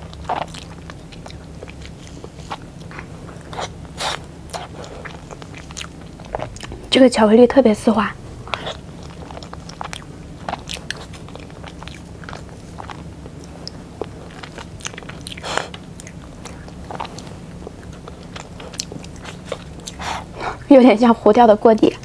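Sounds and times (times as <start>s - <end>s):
chewing with wet mouth clicks: 0.0s - 6.9s, 8.4s - 20.6s
low steady hum: 0.0s - 22.0s.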